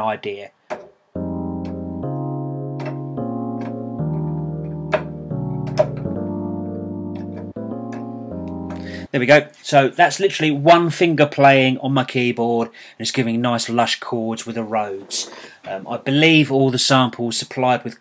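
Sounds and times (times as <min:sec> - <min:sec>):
electric piano chords: 0:01.2 - 0:09.1.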